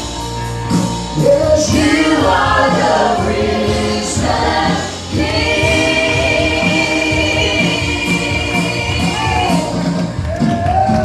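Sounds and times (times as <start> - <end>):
live band playing: 0.0 - 11.0
men and women singing gospel: 1.2 - 10.0.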